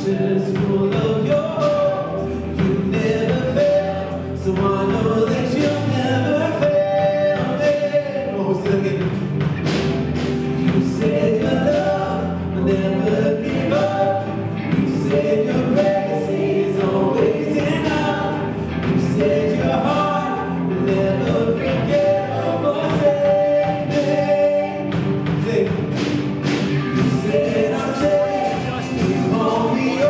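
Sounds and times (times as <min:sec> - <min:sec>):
acoustic guitar: 0:00.0 - 0:30.0
drums: 0:00.0 - 0:30.0
electric guitar: 0:00.0 - 0:30.0
piano: 0:00.0 - 0:30.0
woman singing lead: 0:26.8 - 0:30.0.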